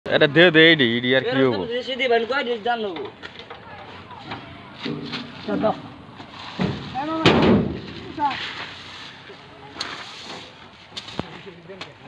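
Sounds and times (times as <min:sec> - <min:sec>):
heavy thumps: 0:06.5 - 0:08.1.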